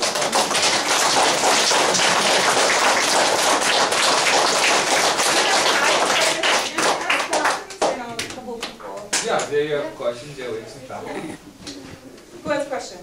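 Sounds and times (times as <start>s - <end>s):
children applauding: 0.0s - 7.9s.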